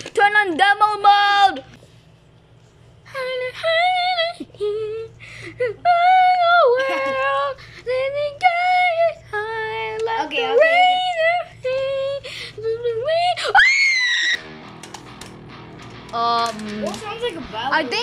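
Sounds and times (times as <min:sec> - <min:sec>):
steady hum: 0:00.0 - 0:18.0.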